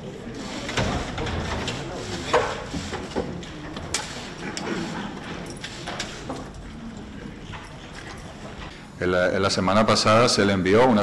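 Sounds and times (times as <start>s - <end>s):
low room noise: 0.0s - 11.0s
footsteps: 0.4s - 8.7s.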